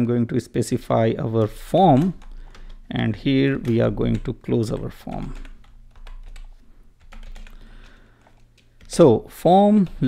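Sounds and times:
typing on computer keyboard: 0:01.3 - 0:09.1.

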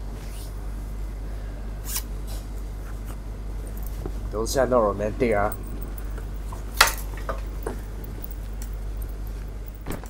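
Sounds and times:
low room hum: 0:00.0 - 0:10.0
zip: 0:01.8 - 0:02.1
jacket rustling: 0:05.2 - 0:10.0.

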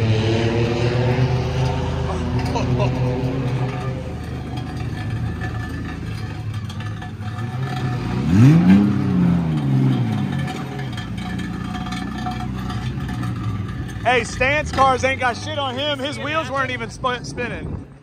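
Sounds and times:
engine revving: 0:00.0 - 0:17.9
car engines running: 0:00.0 - 0:18.0.

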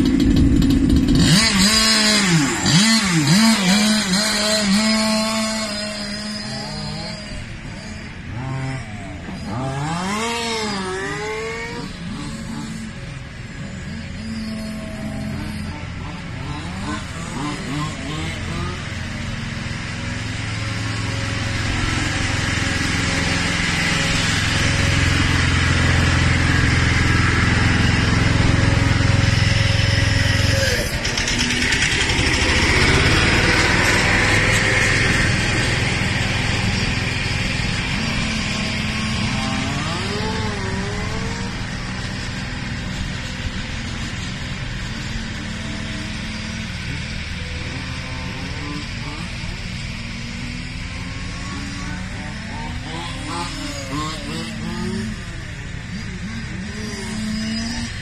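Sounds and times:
rc car engine revving: 0:00.0 - 0:58.0.

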